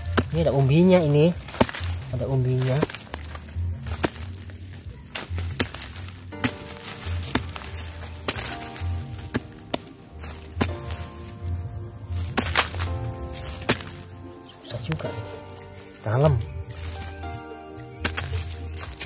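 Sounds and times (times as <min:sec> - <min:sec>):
background music with low beat: 0:00.0 - 0:19.0
metal tool striking soil: 0:00.0 - 0:19.0.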